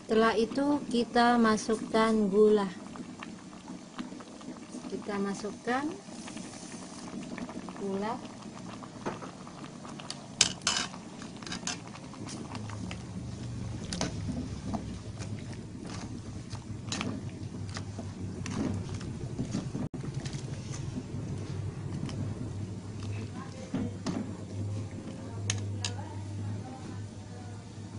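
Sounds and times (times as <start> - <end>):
low steady hum: 0.0 - 27.9.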